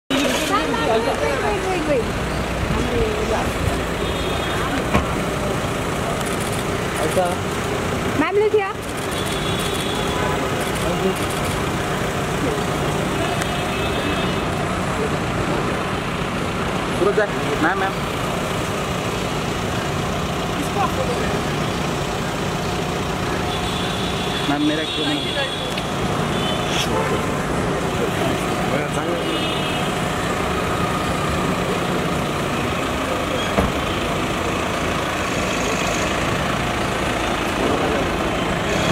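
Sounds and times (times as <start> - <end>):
car engine idling: 0.1 - 38.9
street traffic noise: 0.1 - 38.9.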